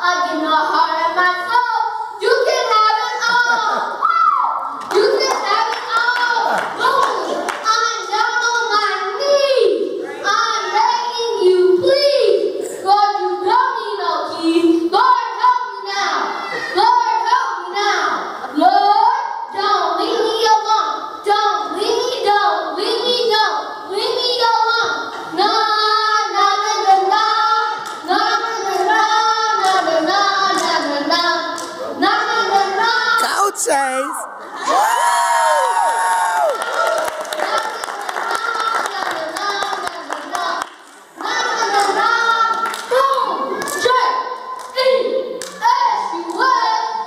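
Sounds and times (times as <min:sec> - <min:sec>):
child singing into microphone: 0:05.0 - 0:34.2, 0:37.4 - 0:47.0
child rapping into microphone: 0:28.4 - 0:34.3, 0:44.8 - 0:47.0.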